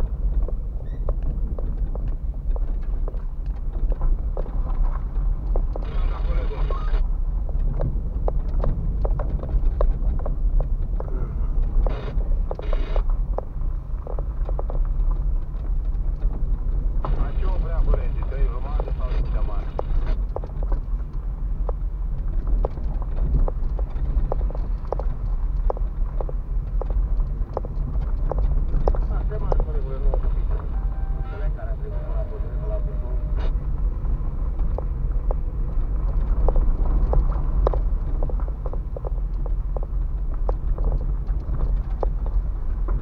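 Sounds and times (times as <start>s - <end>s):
car tyres rumbling on gravel: 0.0s - 43.0s
stones knocking under tyres: 7.4s - 18.8s, 19.8s - 30.7s, 33.7s - 43.0s.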